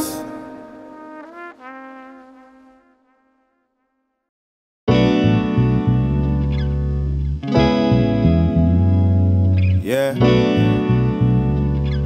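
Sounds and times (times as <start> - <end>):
held brass note: 0.0 - 4.0.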